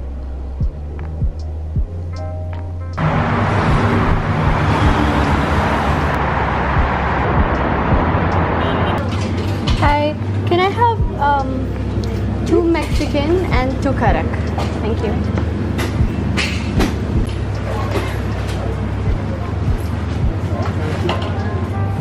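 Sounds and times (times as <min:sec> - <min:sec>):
background music: 0:00.0 - 0:22.0
city street traffic: 0:00.0 - 0:22.0.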